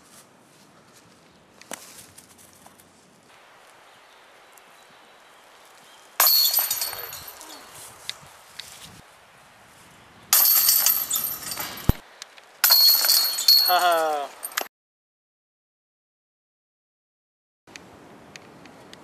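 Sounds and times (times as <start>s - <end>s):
disc hitting metal chains: 6.2s - 7.7s, 10.4s - 12.0s, 12.6s - 14.7s.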